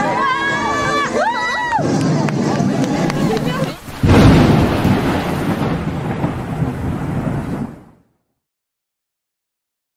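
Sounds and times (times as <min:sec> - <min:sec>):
rolling thunder rumble: 0:01.8 - 0:08.3
rain hiss: 0:03.1 - 0:07.9.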